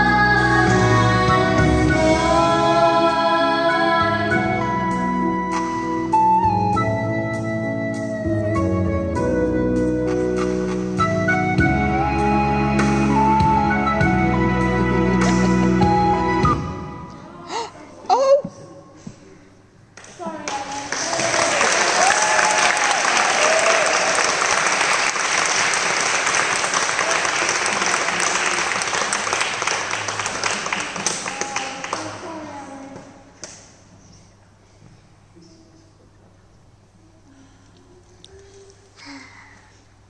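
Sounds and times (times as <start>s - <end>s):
audience applauding: 20.0s - 32.4s.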